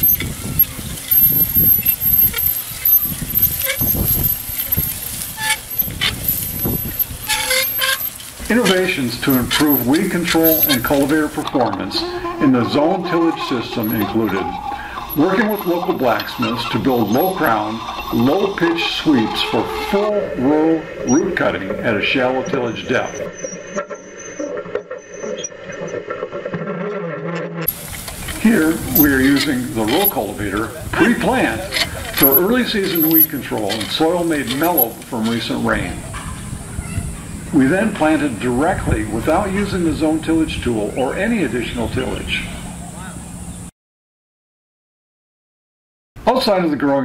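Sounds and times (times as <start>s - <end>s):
thin high squeal: 0.0s - 11.2s, 22.7s - 25.6s, 31.2s - 35.4s
cultivator scraping through dry soil: 0.0s - 11.4s, 13.2s - 20.1s, 27.7s - 36.5s.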